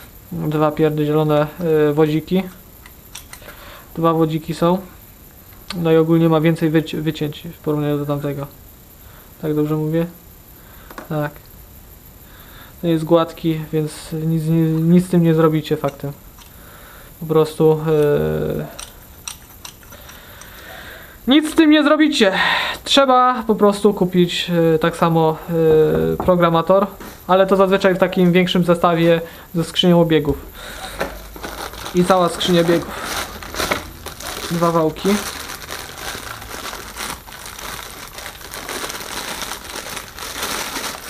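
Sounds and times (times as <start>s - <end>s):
metal parts clicking: 2.8s - 3.5s, 18.8s - 20.5s
plastic bag crinkling: 30.3s - 41.0s.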